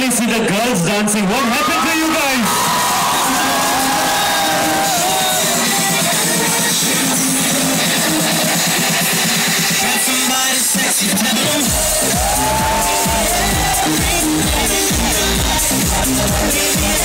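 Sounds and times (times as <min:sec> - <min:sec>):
electronic dance music: 0:00.0 - 0:17.0
sliding bass notes: 0:11.2 - 0:17.0.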